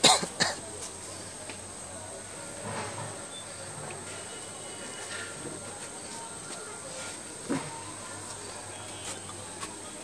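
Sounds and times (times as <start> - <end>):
person coughing: 0.0 - 0.6.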